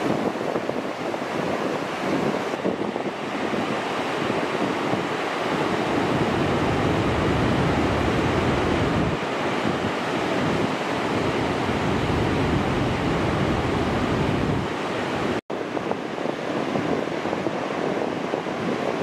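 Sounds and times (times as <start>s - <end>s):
ocean waves breaking: 0.0s - 19.0s
wind on microphone: 0.0s - 19.0s.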